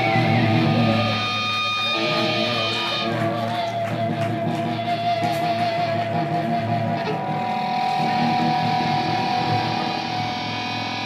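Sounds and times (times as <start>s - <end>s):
electric guitar sustained note: 0.0s - 11.0s
moving lower guitar notes: 0.0s - 11.0s.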